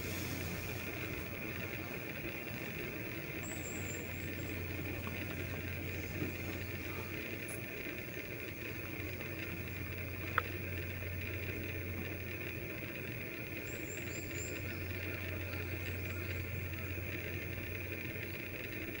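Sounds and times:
outdoor hum and hiss: 0.0 - 19.0
faint high chirps: 3.4 - 7.0.

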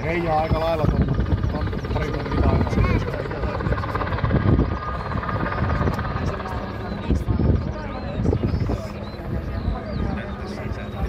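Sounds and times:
helicopter rotor chop: 0.0 - 11.0
people's voices: 0.0 - 11.0
turbine noise: 0.0 - 11.0.

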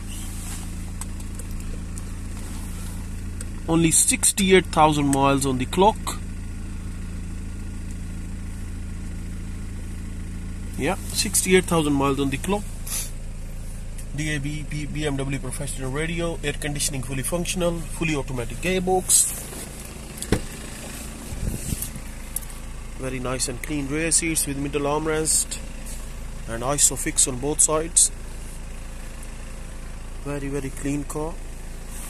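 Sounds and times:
diesel engine idling: 0.0 - 32.0
low handling knocks: 20.2 - 20.6.

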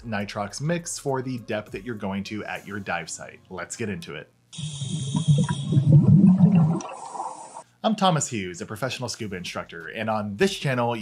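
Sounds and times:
scuba breathing hiss: 4.6 - 5.9
gurgle of exhaled bubbles: 4.8 - 7.6.

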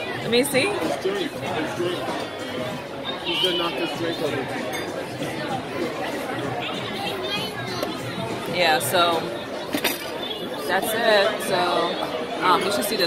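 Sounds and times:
indistinct chatter of voices: 0.0 - 13.0.

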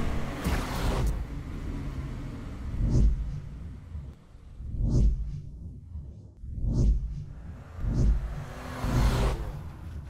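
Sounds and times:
steady low rumble: 1.1 - 8.6
deep low booms: 2.7 - 8.4
short rising whoosh: 2.7 - 9.7.

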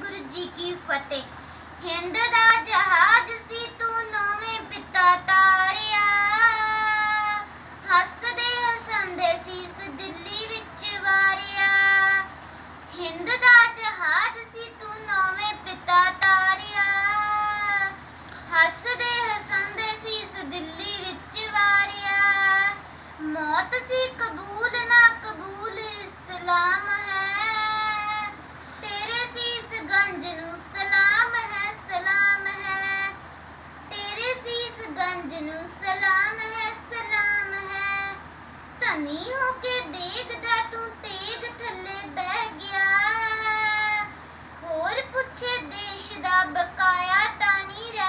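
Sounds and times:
girl singing unaccompanied: 0.0 - 48.0.

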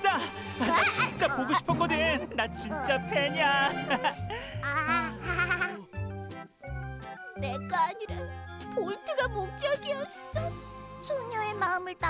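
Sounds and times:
animated scene background music: 0.0 - 12.0
quavering cartoon voice: 0.8 - 2.1, 4.6 - 5.8.

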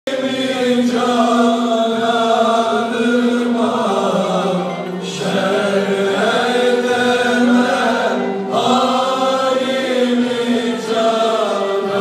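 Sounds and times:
male soloist singing: 0.1 - 12.0
men's choir singing: 0.1 - 12.0.

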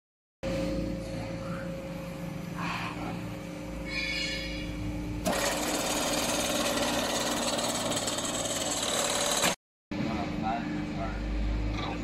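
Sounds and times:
motor hum: 3.2 - 9.6.

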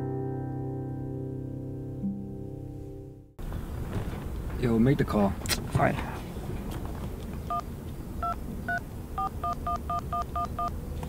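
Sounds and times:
touch-tone dialing beeps: 8.2 - 10.7.

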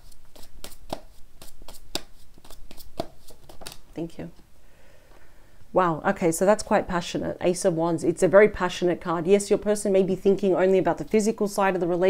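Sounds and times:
cards being shuffled: 0.0 - 3.9.

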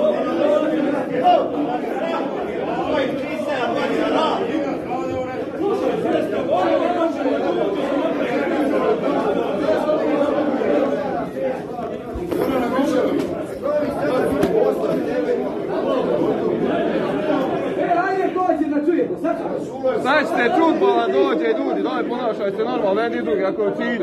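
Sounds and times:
crowd of men chattering: 0.0 - 24.0.

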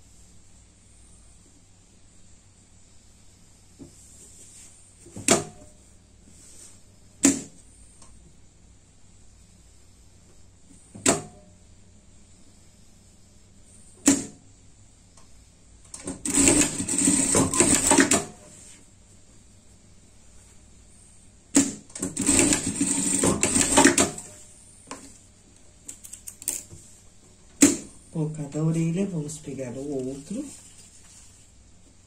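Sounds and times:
sewing machine stitching: 16.0 - 18.4, 21.6 - 24.3.

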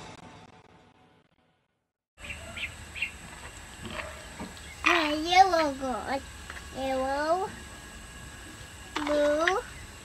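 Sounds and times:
outdoor background: 2.2 - 10.0.

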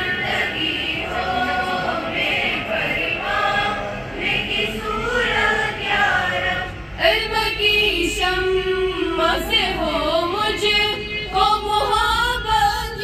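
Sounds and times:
girls singing in unison: 0.0 - 13.0.

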